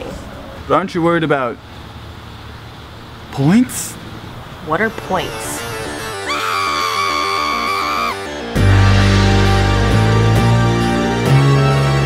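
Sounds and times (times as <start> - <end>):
dramatic music: 5.0 - 12.0
high-pitched scream: 6.0 - 8.4.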